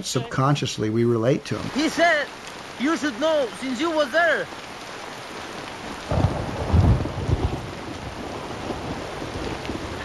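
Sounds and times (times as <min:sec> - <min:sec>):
heavy rain pouring: 0:00.0 - 0:10.0
low rumble of thunder: 0:06.0 - 0:10.0.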